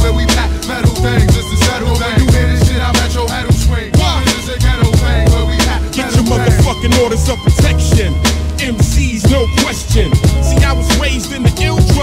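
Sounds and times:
deep bass: 0.0 - 12.0
rapping over a beat: 0.0 - 12.0
drum hits: 2.2 - 9.5.

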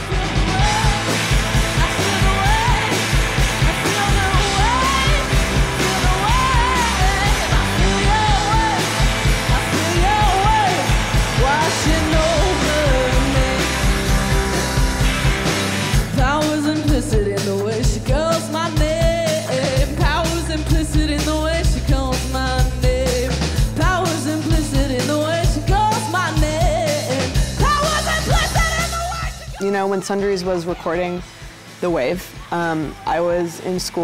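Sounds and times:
woman singing lead vocal: 0.0 - 14.2, 16.0 - 31.3
bass guitar: 0.0 - 34.0
electric guitars: 0.0 - 34.0
steady drum beat: 0.0 - 34.0.

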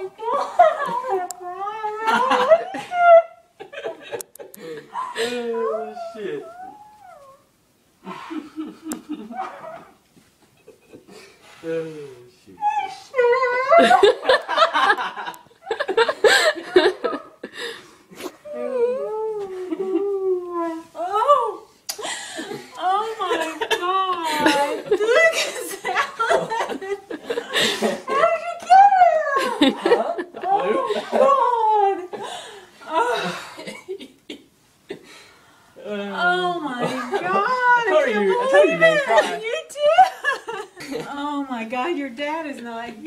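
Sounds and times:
man and woman laughing: 13.7 - 17.6, 29.4 - 32.3
person wailing crying: 18.5 - 21.7.

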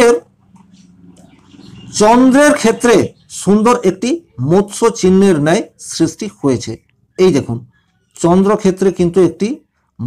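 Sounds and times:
man speaking: 0.0 - 0.3, 1.9 - 10.0.

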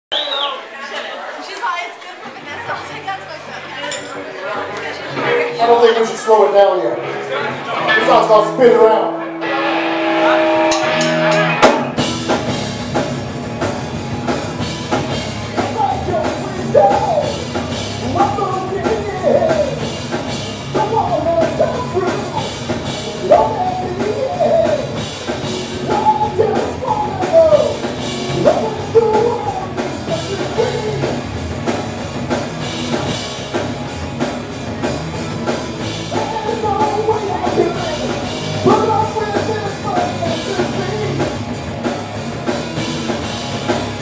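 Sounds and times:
crowd chatter in a bar: 0.1 - 44.0
live rock band playing: 4.6 - 44.0.

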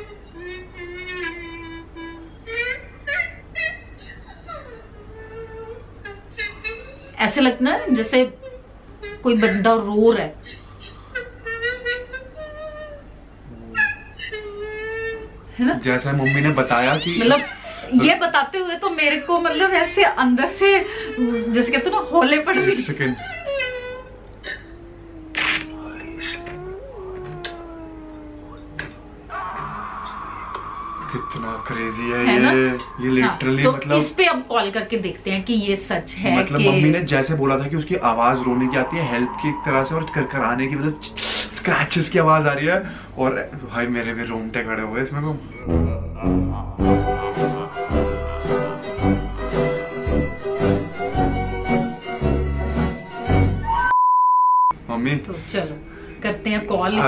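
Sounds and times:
people talking: 7.2 - 8.4, 9.2 - 10.4, 13.5 - 13.9, 15.6 - 23.3, 24.8 - 29.0, 30.8 - 47.6, 54.9 - 57.0
wailing moan through phone speaker: 24.6 - 34.0, 38.0 - 41.9
high pure test tone beep: 53.8 - 54.8.

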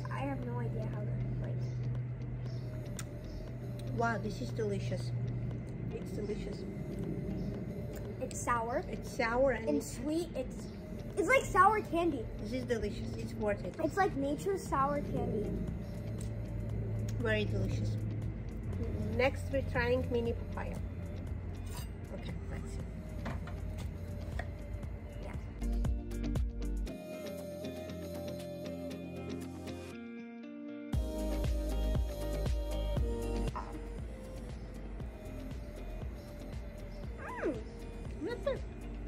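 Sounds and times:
low background hum: 0.0 - 26.9
background music: 0.0 - 39.0.

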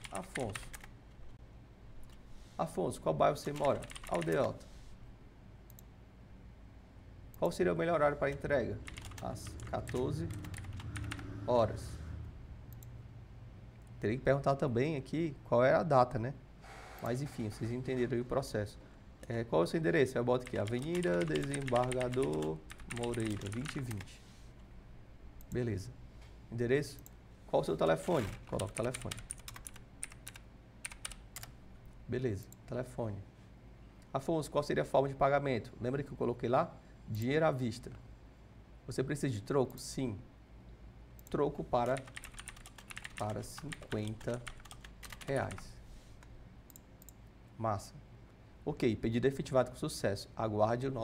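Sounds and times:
computer keyboard clicking: 0.0 - 0.9, 3.5 - 4.5, 8.3 - 11.3, 20.4 - 24.1, 28.2 - 31.5, 41.2 - 45.6
computer mouse click: 46.2 - 47.2.

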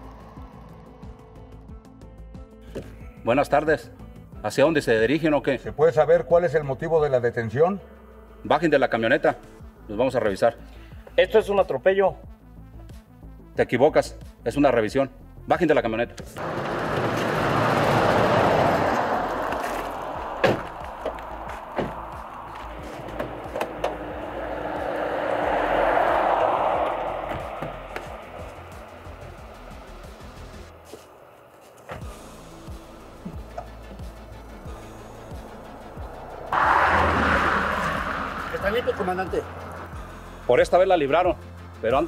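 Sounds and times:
road traffic passing: 0.0 - 1.7, 16.4 - 41.8.

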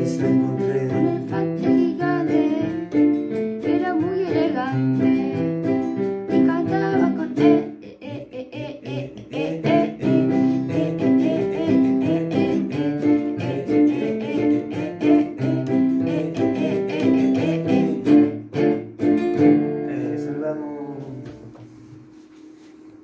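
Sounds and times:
electronic keyboard melody: 0.0 - 7.8, 9.6 - 20.1.

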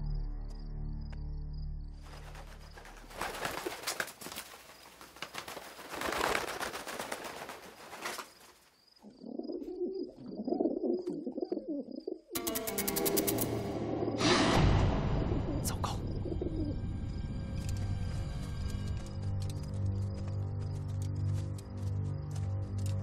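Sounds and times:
pigeon wings fluttering: 2.0 - 8.7
pigeon cooing: 9.0 - 12.4, 16.1 - 16.8.

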